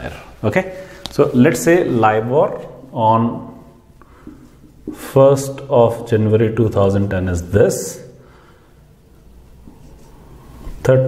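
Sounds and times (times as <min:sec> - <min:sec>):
marker pen on whiteboard: 0:09.1 - 0:11.0.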